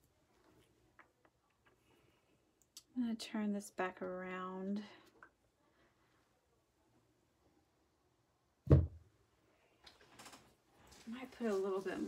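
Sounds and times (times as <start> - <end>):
canvas thumping onto table: 8.7 - 9.0.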